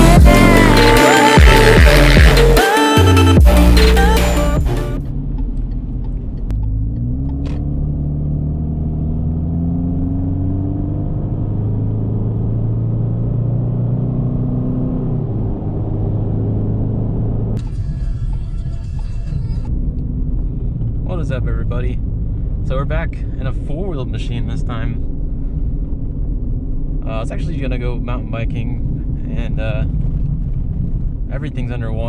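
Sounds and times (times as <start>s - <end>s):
car engine droning: 0.0s - 32.0s.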